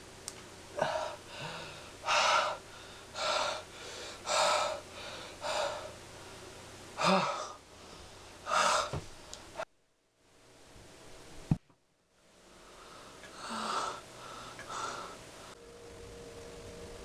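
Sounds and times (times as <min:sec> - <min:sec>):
man gasping for breath: 0:00.8 - 0:06.0.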